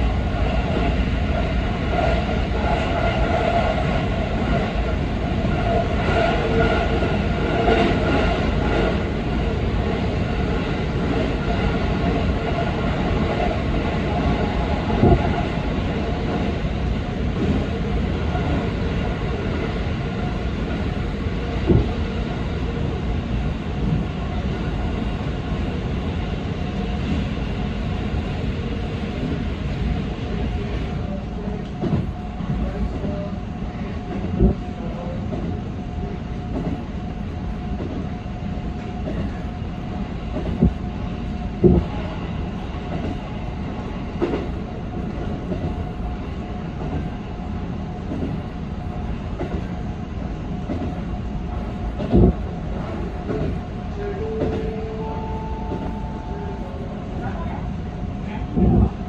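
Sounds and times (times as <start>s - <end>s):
train wheels rumbling on rail: 0.0s - 59.0s.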